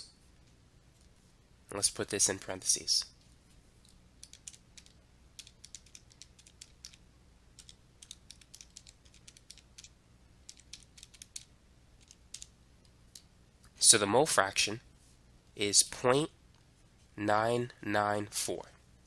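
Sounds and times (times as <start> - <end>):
calculator keys clicking: 4.2 - 7.0, 7.6 - 9.9, 10.5 - 12.5.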